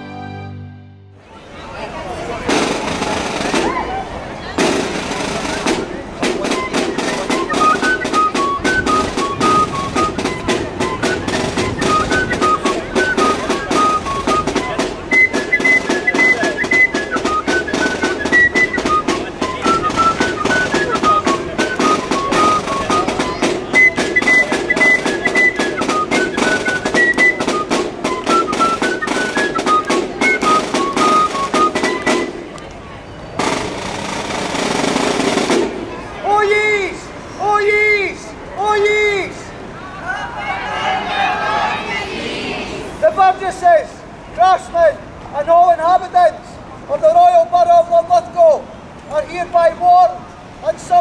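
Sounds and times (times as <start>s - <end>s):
high flute tune: 0.0s - 1.3s, 4.6s - 33.6s
snare drumming: 2.5s - 3.9s, 4.6s - 32.6s, 33.4s - 36.0s.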